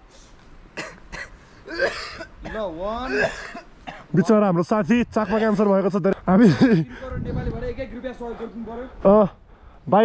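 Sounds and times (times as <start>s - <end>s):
person clearing throat: 0.8s - 4.0s
man speaking: 2.4s - 10.0s.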